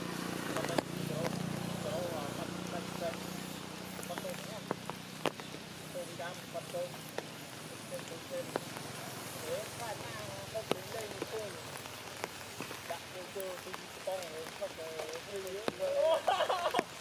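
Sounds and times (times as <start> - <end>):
rain dripping on leaves: 0.0 - 17.0.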